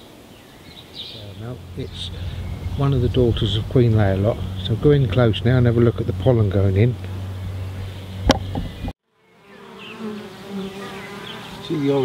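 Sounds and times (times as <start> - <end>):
honeybees buzzing: 1.2 - 12.0.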